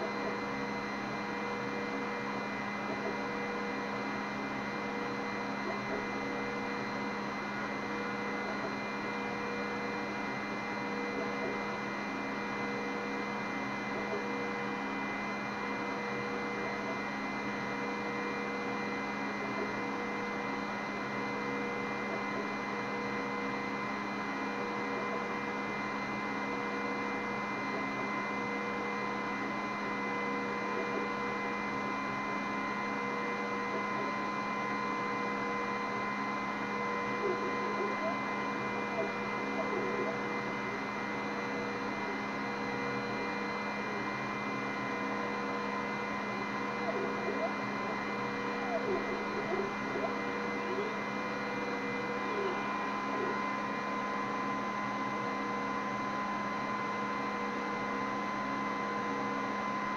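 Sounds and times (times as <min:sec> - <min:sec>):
laser cutter fans humming: 0:00.0 - 0:59.9
laser head tone: 0:00.0 - 0:59.9.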